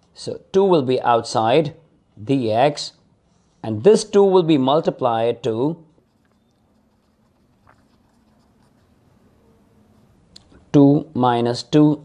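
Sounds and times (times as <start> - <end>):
ballpoint pen scratching on paper: 6.0 - 9.3.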